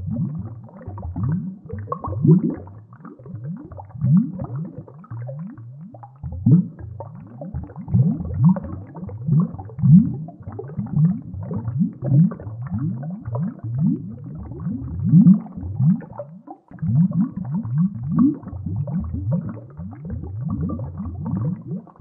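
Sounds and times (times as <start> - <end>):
underwater bubbling bursts: 0.0 - 22.0.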